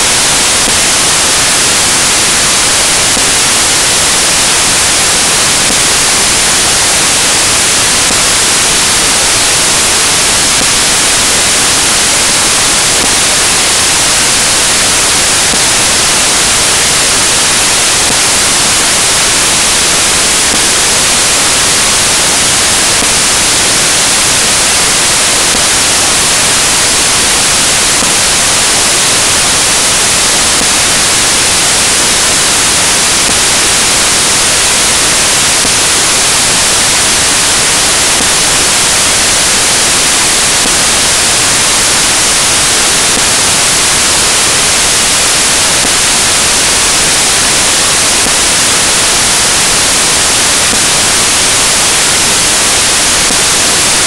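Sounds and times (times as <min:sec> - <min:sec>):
steady white noise hiss: 0:00.0 - 0:54.0.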